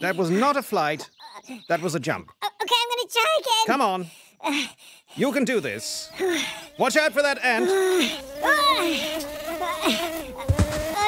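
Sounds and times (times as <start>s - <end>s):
insect wings buzzing: 5.1s - 11.0s.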